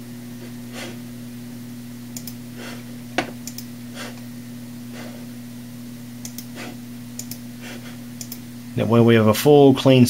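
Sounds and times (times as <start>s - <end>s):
steady low hum: 0.0s - 10.0s
computer mouse clicks: 2.2s - 2.4s, 3.4s - 3.7s, 6.2s - 6.5s, 7.2s - 7.4s, 8.2s - 8.4s.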